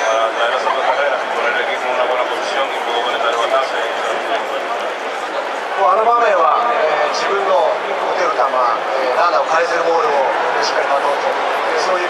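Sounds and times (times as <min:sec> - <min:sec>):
man speaking in stadium: 0:00.0 - 0:05.0, 0:05.7 - 0:12.0.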